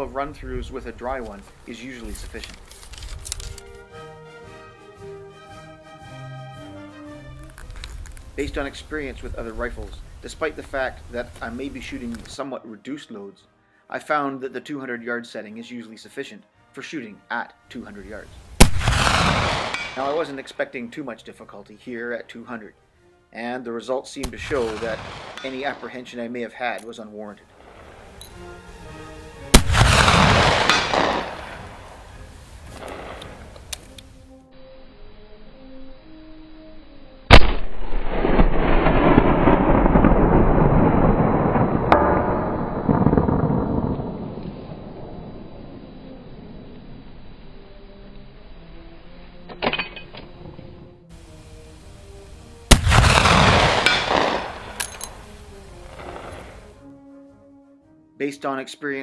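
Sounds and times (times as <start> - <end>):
soft background music: 0.0 - 37.8, 45.3 - 59.0
rifle shot echo: 18.6 - 20.5, 24.2 - 26.0, 29.5 - 33.7, 37.3 - 45.6, 52.7 - 55.3, 55.9 - 56.7.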